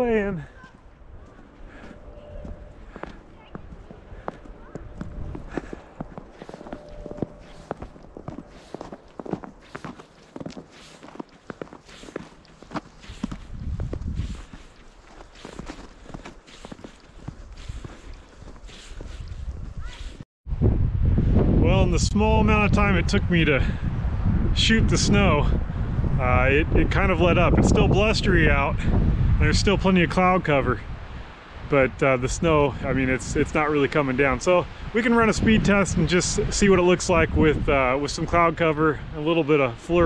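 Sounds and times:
man talking: 0:00.0 - 0:00.6, 0:21.6 - 0:23.8, 0:24.6 - 0:25.6, 0:26.2 - 0:30.8, 0:31.7 - 0:40.0
footsteps in snow: 0:00.4 - 0:20.2.

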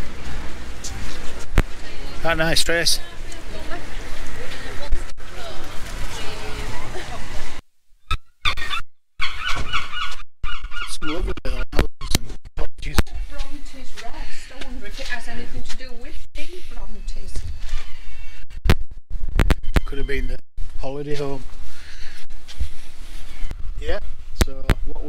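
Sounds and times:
gulls calling: 0:01.8 - 0:11.6.

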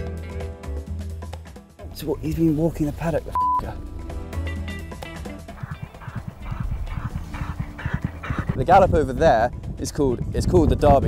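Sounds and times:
horse hoofbeats galloping: 0:05.5 - 0:08.8.

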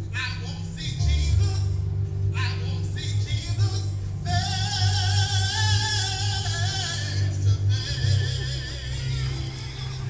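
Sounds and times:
steady low hum: 0:00.0 - 0:10.0
person singing with vibrato: 0:02.4 - 0:10.0.

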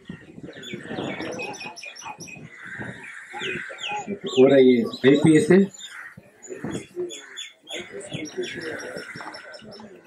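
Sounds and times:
faint voices: 0:00.0 - 0:10.0
small birds chirping: 0:00.0 - 0:10.0.

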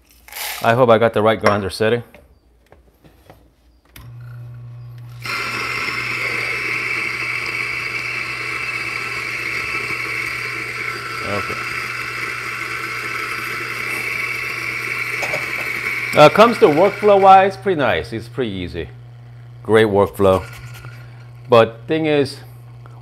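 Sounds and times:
coffee beans grinding: 0:00.0 - 0:00.6, 0:04.3 - 0:22.9
coffee grinder motor hum: 0:04.0 - 0:23.0.

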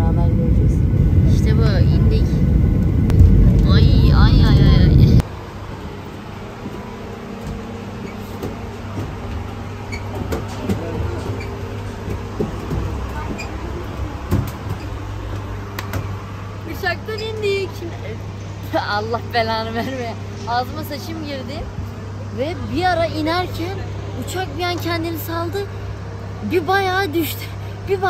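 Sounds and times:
voices: 0:00.0 - 0:05.2, 0:10.0 - 0:28.0
airliner cabin rumble: 0:00.0 - 0:18.6
steady low hum: 0:00.0 - 0:28.0
faint footsteps: 0:05.6 - 0:16.2.

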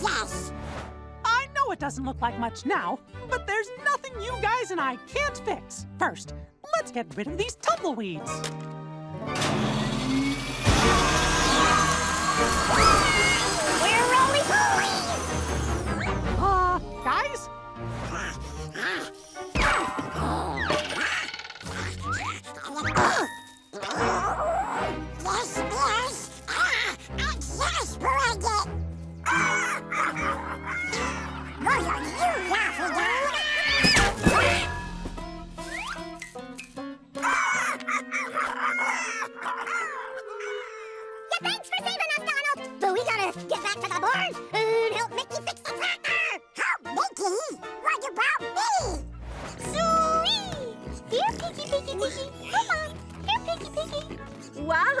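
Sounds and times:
background music: 0:00.0 - 0:55.0.

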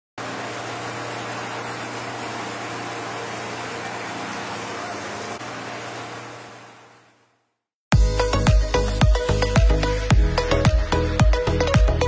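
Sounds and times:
churning boat wake: 0:00.2 - 0:07.2
motorboat engine drone: 0:00.2 - 0:12.0.

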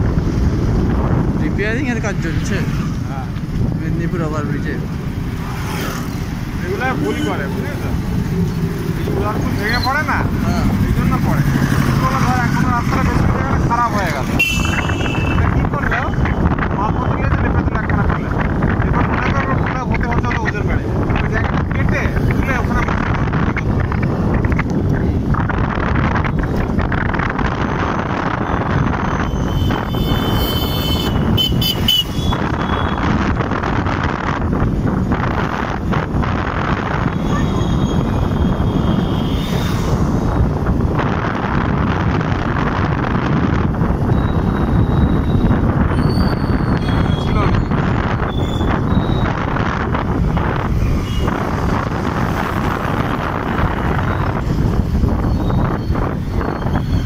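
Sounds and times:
road and wind rush: 0:00.0 - 0:57.0
voices: 0:06.1 - 0:23.8, 0:46.7 - 0:49.5
motorcycle engine running: 0:07.4 - 0:12.7
high steady beep: 0:14.4 - 0:15.4.

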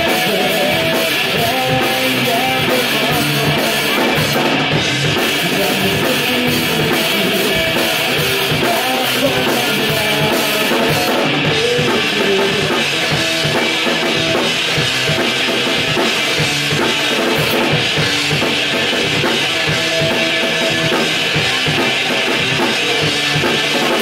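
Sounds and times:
live rock band playing: 0:00.0 - 0:24.0
loud drums: 0:00.0 - 0:24.0.

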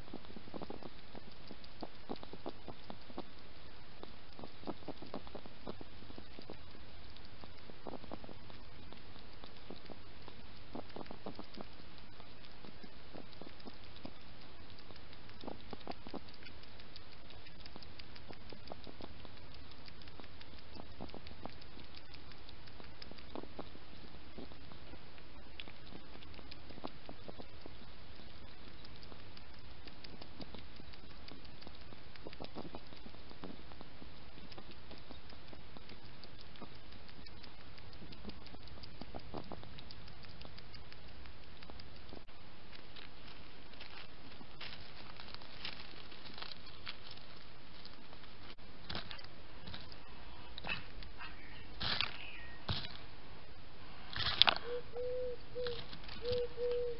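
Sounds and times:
hedgehog clicking mouth sounds: 0:00.0 - 0:56.9
microphone hiss: 0:00.0 - 0:56.9
hedgehog rustling in dry leaves: 0:42.7 - 0:48.5.

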